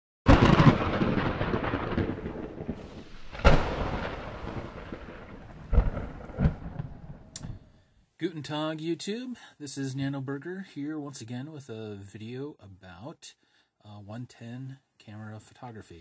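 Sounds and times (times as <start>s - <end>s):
thunder cracks and rolling rumble: 0.3s - 7.4s.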